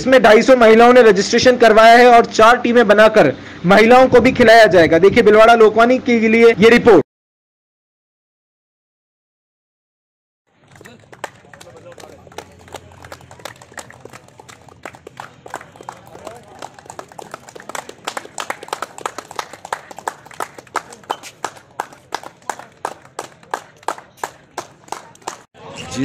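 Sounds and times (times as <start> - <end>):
hand clapping: 10.6 - 25.5.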